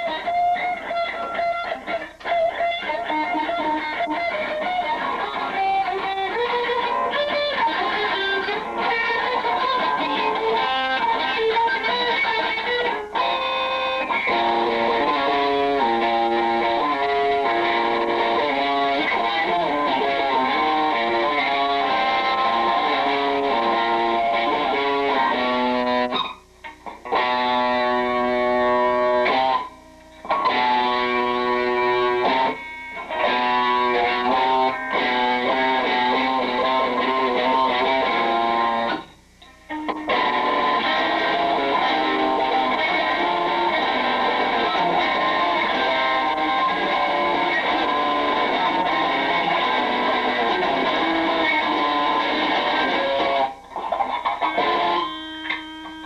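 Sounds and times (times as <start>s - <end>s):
electric guitar solo: 0.0s - 56.0s.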